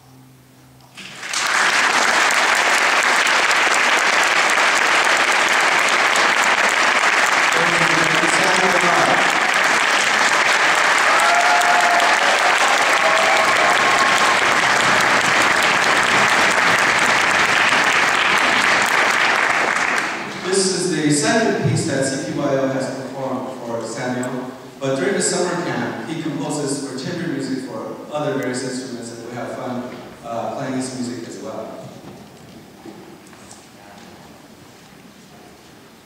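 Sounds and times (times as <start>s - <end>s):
audience applauding: 0.9s - 20.6s.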